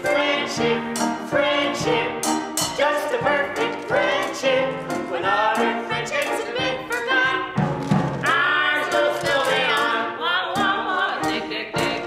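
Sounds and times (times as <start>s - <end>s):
man and woman singing a duet: 0.0s - 7.6s, 8.2s - 12.0s.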